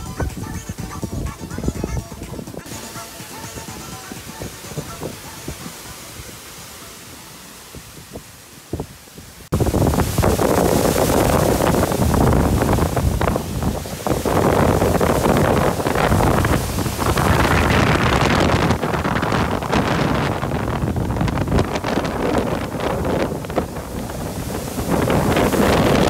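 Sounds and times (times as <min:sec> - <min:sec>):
gusty wind in trees: 0:00.0 - 0:26.0.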